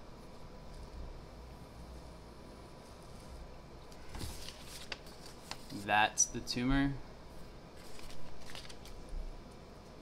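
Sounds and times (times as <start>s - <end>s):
paper rustling: 4.1s - 5.9s, 7.8s - 9.0s.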